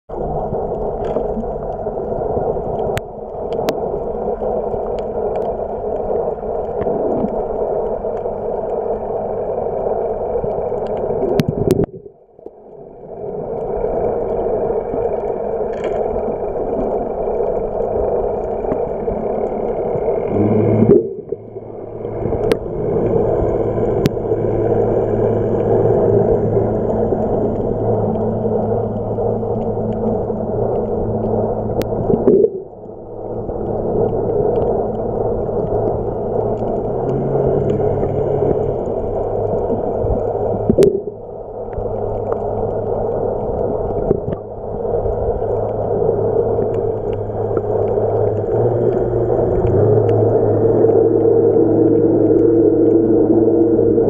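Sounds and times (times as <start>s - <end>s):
faint hum: 0.1s - 54.0s
underwater rushing noise: 0.1s - 54.0s.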